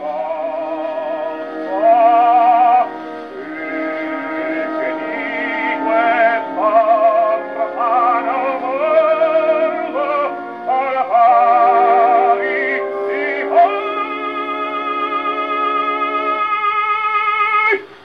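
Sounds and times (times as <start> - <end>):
operatic baritone singing: 0.0 - 17.8
orchestra playing: 0.0 - 17.8
gramophone record playing: 0.0 - 18.0.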